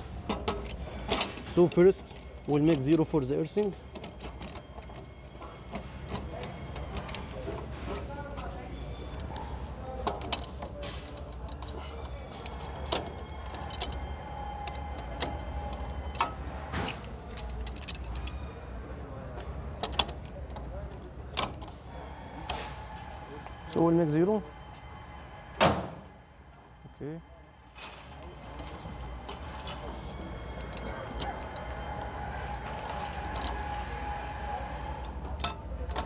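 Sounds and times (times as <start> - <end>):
metal lever clicks and clinks: 0.3 - 8.1, 10.0 - 18.4, 19.8 - 21.7, 28.6 - 33.8, 35.0 - 36.0.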